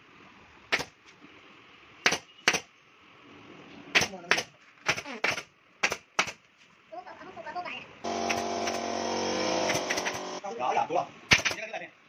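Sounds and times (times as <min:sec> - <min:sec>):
staple gun firing: 0:00.7 - 0:00.9, 0:09.7 - 0:10.3, 0:11.3 - 0:11.6.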